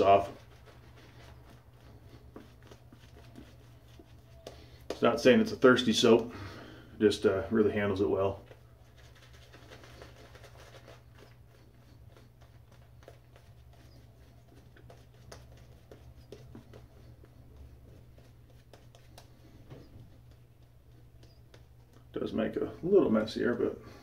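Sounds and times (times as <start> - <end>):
shaving brush swishing on stubble: 0.0 - 6.0.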